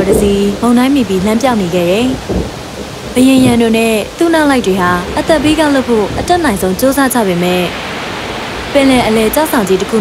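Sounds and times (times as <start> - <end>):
narration voice: 0.0 - 2.2, 3.2 - 7.7
rain and rough sea hiss: 0.0 - 10.0.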